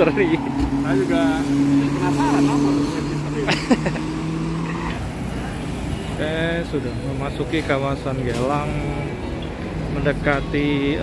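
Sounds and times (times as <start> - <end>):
road traffic engine hum: 0.0 - 11.0
short laugh: 3.5 - 4.1.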